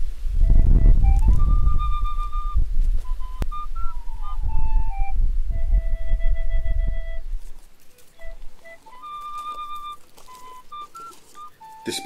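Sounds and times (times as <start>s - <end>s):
flute melody: 0.3s - 12.0s.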